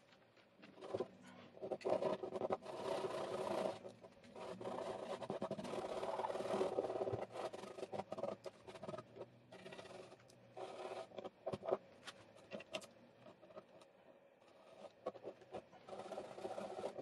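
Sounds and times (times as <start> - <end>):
brush handle scraping plastic: 0.7 - 17.0
faint squeak: 1.0 - 1.6.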